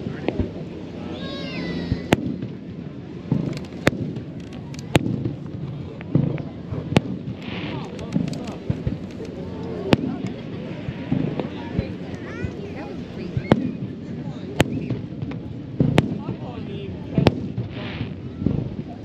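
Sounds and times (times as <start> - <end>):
crowd voices: 0.0 - 19.0
fireworks bursting: 0.0 - 19.0.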